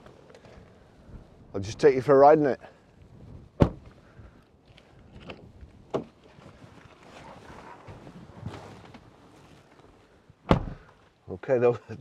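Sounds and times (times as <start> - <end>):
rustling: 6.1 - 10.2.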